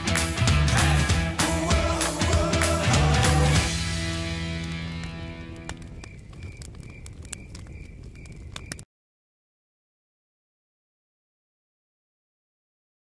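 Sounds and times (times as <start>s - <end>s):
campfire crackling: 0.0s - 8.8s.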